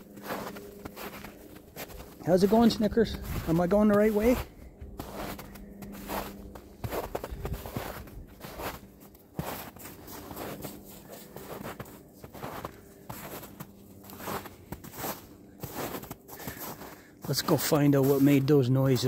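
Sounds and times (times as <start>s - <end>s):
footsteps in snow: 0.0s - 19.0s.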